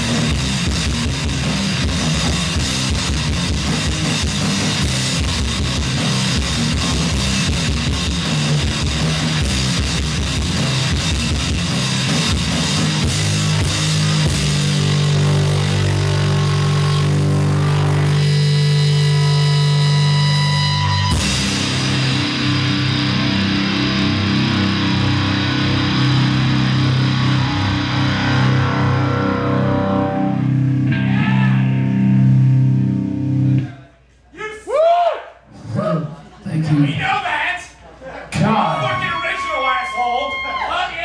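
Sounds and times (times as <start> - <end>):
distorted electric guitar chord: 4.3 - 33.5.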